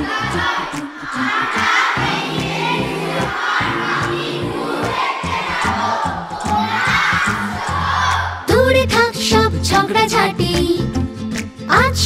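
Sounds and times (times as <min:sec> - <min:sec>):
girls chanting in unison: 0:00.0 - 0:08.5
backing music with bass line: 0:00.0 - 0:12.0.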